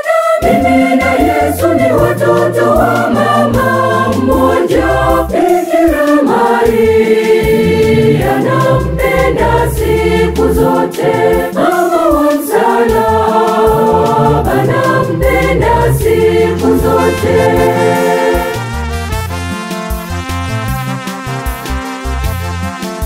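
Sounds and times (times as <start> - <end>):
mixed choir singing gospel: 0.0 - 18.9
electric organ with bass line: 0.4 - 5.4, 6.7 - 11.4, 13.0 - 22.8.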